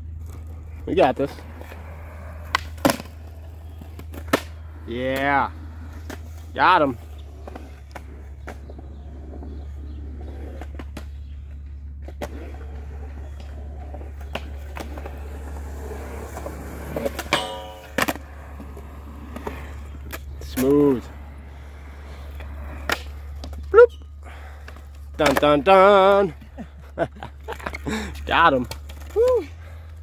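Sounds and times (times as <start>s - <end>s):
skateboard wheels rolling on concrete: 0.0s - 30.0s
skateboard clacks on pavement: 1.4s - 6.4s, 7.1s - 23.7s, 24.4s - 26.5s
person shouting: 23.7s - 23.9s, 29.1s - 29.5s.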